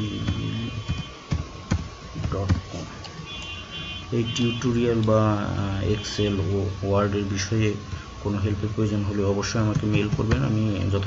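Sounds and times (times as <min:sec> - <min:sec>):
high-pitched electronic tones: 0:00.0 - 0:01.3
man talking: 0:04.1 - 0:11.0.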